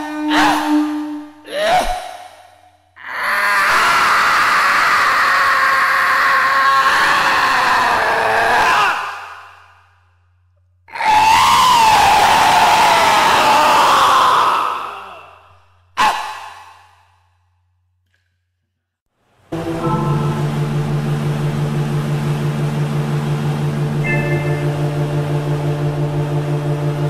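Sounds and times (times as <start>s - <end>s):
long wavering blown tones: 19.6s - 27.0s.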